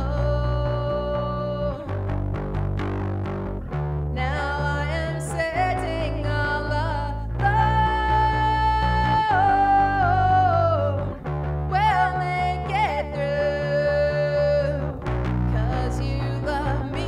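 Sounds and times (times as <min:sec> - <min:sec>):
woman singing with vibrato: 0:00.0 - 0:02.1, 0:04.1 - 0:17.0
electric bass playing: 0:00.0 - 0:17.0.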